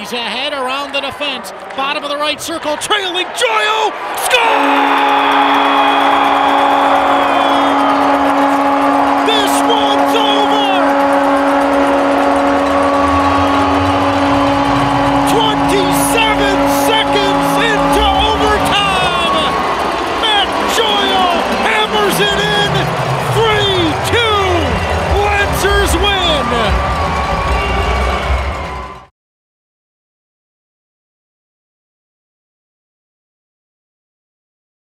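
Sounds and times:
crowd cheering and shouting: 0.7 - 29.1
arena goal horn: 4.1 - 29.0.

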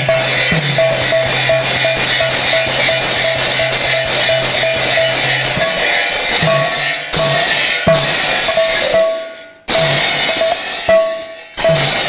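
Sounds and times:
barrel drum: 0.0 - 12.0
hand cymbals crashing: 0.0 - 12.0.

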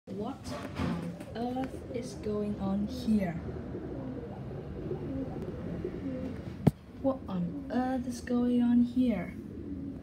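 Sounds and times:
pigeons cooing: 0.4 - 10.0.

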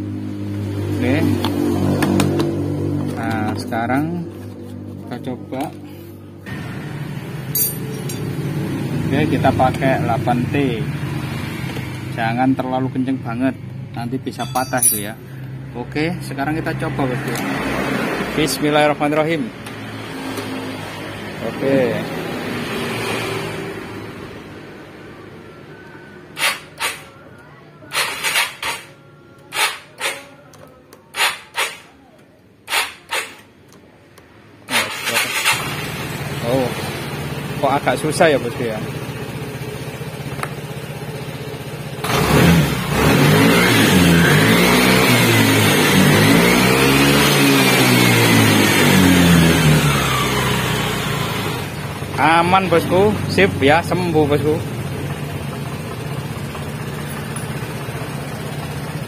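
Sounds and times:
metal tool clinking: 7.5 - 8.3, 14.4 - 15.3
scooter starter bursts: 26.4 - 27.1, 27.9 - 30.3, 31.1 - 31.9, 32.6 - 33.5, 34.7 - 36.1.

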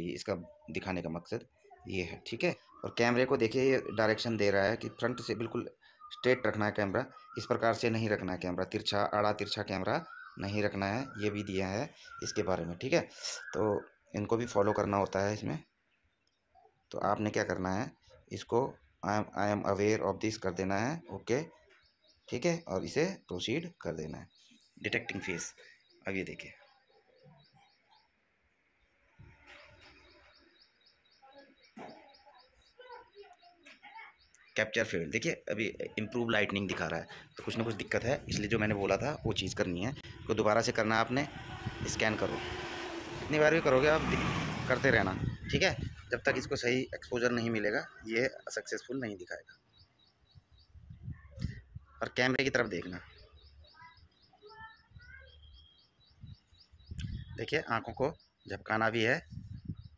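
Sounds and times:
bird chirping: 0.0 - 59.9.

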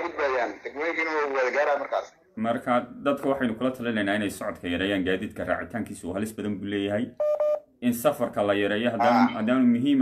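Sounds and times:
man talking: 0.0 - 7.2, 7.8 - 10.0
short beeps: 7.2 - 7.6.

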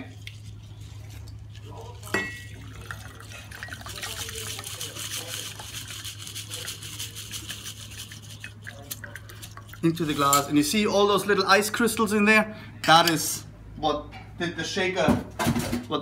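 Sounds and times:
liquid pouring into glass: 0.2 - 10.5.

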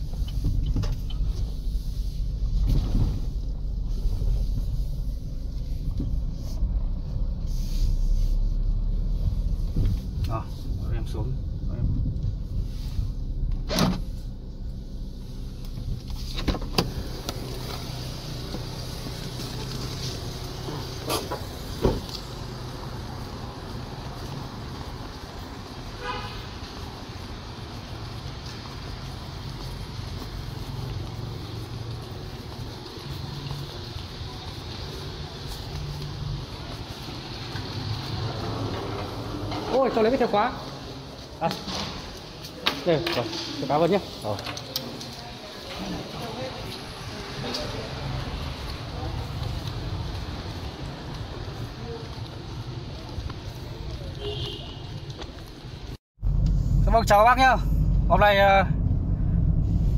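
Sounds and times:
car humming: 0.0 - 41.4, 45.8 - 59.9.

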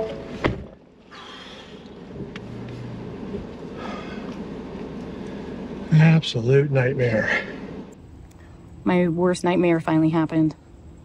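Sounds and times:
truck engine idling: 0.0 - 8.5
man breathing out heavily: 1.1 - 2.0, 3.7 - 4.3.

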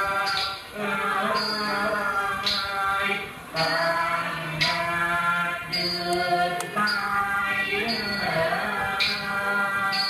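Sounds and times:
person singing long held notes: 0.0 - 10.0.

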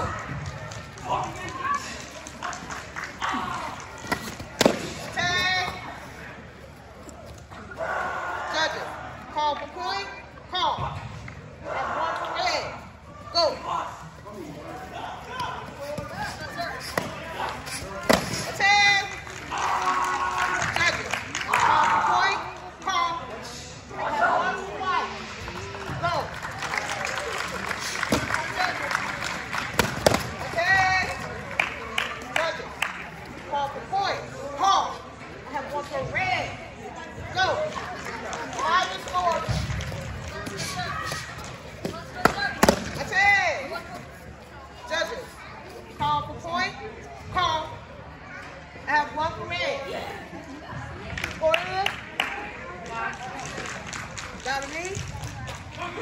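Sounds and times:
background chatter: 0.0 - 56.0
hall full of voices: 0.0 - 56.0.

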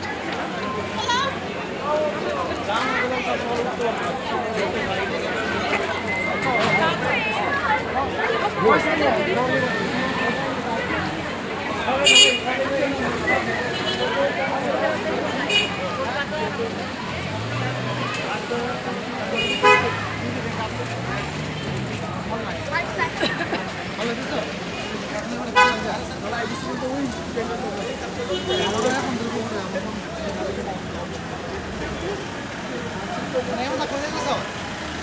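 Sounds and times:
crowd voices: 0.0 - 35.0
people talking nearby: 0.0 - 35.0
vehicle engines running: 0.0 - 35.0
car horn toot: 19.4 - 20.0, 25.6 - 25.9.

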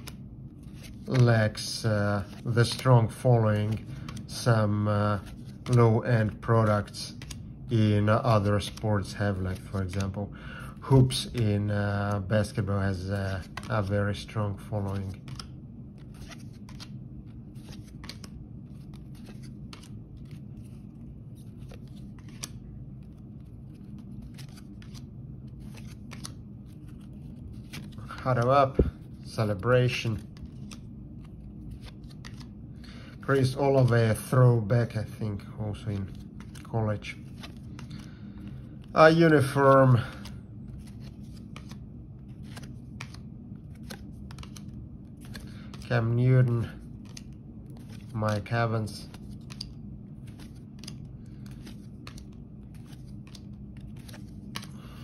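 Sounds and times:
trading cards swishing: 0.0 - 10.2, 13.0 - 32.5, 35.7 - 55.0.

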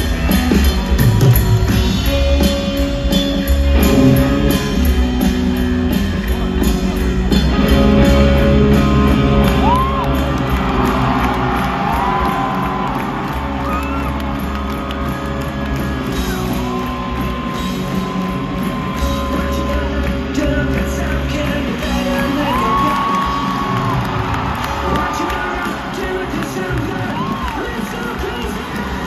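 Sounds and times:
live rock band playing: 0.0 - 29.0
crowd whooping: 6.8 - 29.0.

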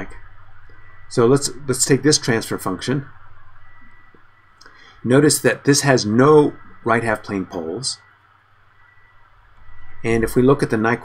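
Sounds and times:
faint steady high tone: 0.0 - 11.0.

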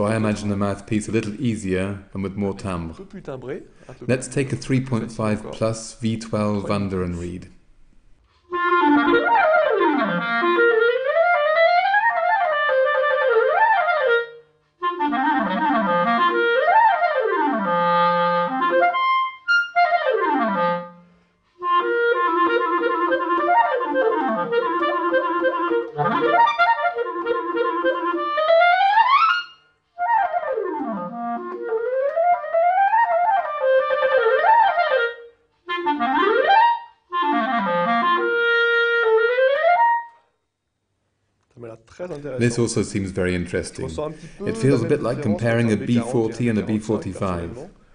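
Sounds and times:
solo clarinet runs: 8.5 - 21.0, 21.6 - 40.2.

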